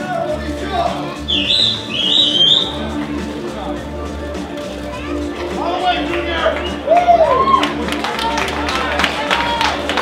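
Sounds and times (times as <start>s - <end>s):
background music with low beat: 0.0s - 10.0s
high rising whistles: 1.3s - 2.8s.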